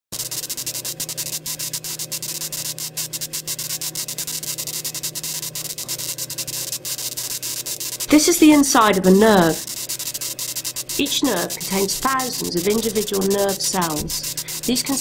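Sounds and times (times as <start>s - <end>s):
static hiss with crackling clicks: 0.1s - 15.0s
low steady hum: 0.2s - 15.0s.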